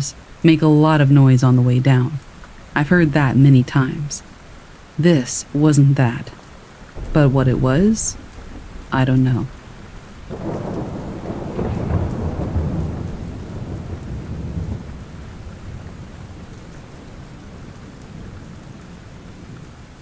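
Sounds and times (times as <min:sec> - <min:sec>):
steady rain falling: 0:00.0 - 0:20.0
low rumble of thunder: 0:06.5 - 0:20.0.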